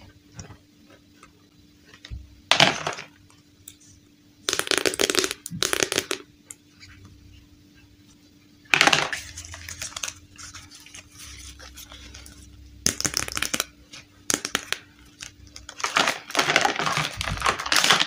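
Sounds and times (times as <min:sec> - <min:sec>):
plastic parts clattering: 0:15.2 - 0:18.0.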